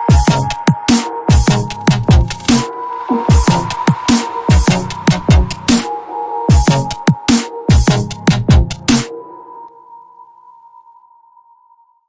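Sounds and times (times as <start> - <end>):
faint echoing wash: 2.6 - 6.5.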